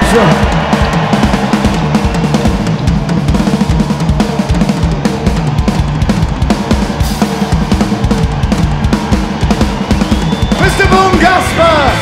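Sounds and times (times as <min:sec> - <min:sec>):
fast drum kit beat: 0:00.0 - 0:12.0
rock music: 0:00.0 - 0:12.0
sustained guitar and bass: 0:10.7 - 0:12.0.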